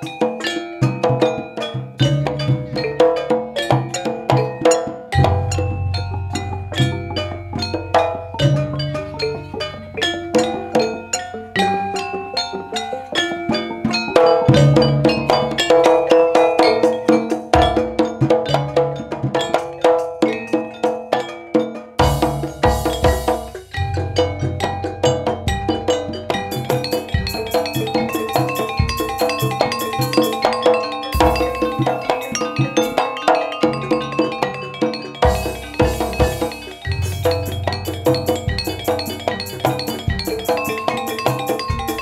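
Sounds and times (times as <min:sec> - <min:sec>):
gamelan playing: 0:00.0 - 0:42.0.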